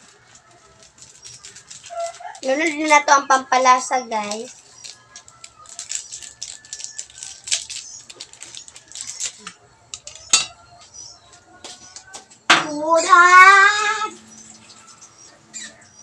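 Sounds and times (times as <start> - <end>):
seasoning rattling from sachet: 0.0 - 10.4.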